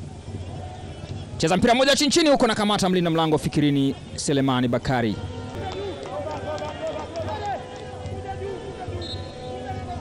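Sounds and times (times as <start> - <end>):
stadium crowd: 0.0 - 10.0
players shouting: 4.8 - 10.0
referee's whistle blast: 8.9 - 9.7.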